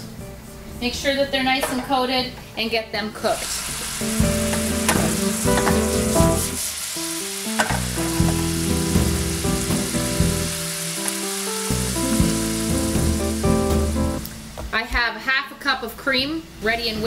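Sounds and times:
light background music: 0.0 - 17.0
sauce sizzling in a frying pan: 3.4 - 14.3.

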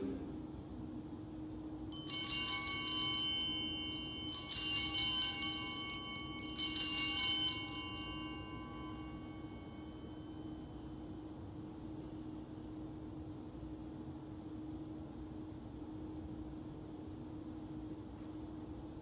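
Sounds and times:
small bright bells ringing: 1.9 - 11.0.

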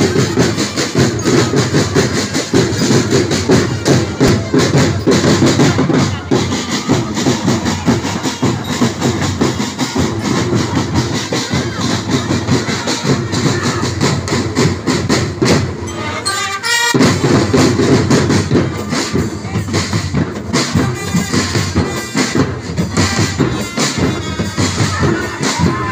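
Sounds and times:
marching drum band: 0.0 - 25.9.

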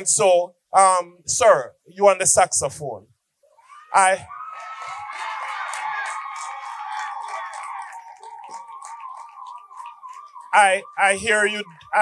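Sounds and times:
hall crowd noise: 3.6 - 12.0
hand claps: 5.1 - 11.0.

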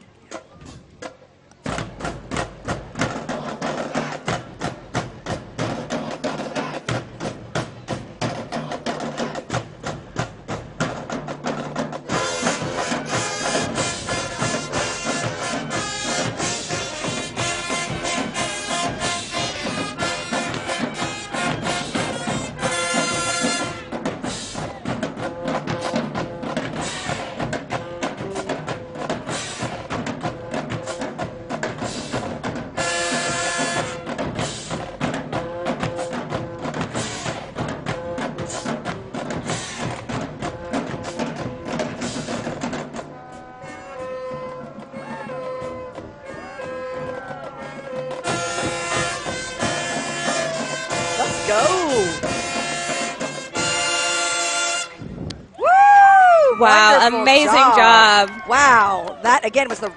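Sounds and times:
horns and woodwinds: 0.0 - 59.9
marching band drumline: 0.3 - 59.9.

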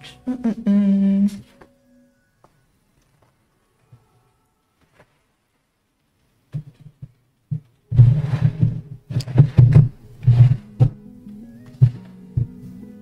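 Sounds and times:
knocks and rustling of handled items: 6.2 - 11.0
thumps: 6.5 - 11.0.

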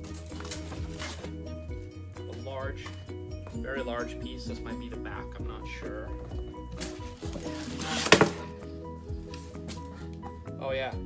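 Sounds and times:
background music: 0.0 - 11.0
panel scraping out of box: 6.8 - 8.5.

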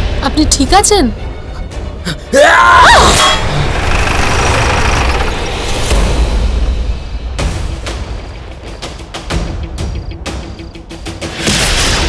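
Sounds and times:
deep dramatic rumbling: 3.4 - 7.4.

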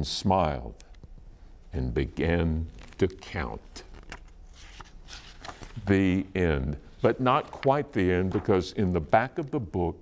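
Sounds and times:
book pages rustling: 2.7 - 6.2, 7.0 - 8.7.

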